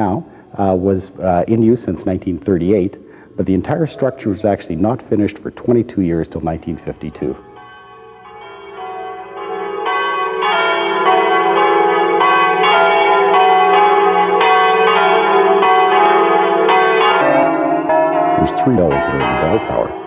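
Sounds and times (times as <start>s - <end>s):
church bells ringing: 3.6s - 20.0s.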